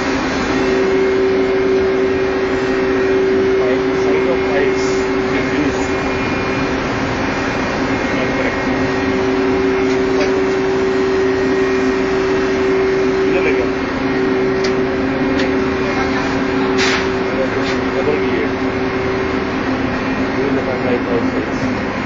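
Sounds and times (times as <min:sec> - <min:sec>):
diesel engine room drone: 0:00.0 - 0:22.0.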